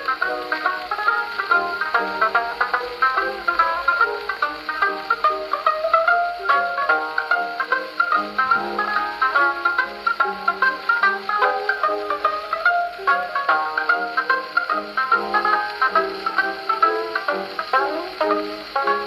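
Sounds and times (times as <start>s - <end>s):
banjo solo on gramophone: 0.0s - 19.0s
record surface hiss: 0.0s - 19.0s.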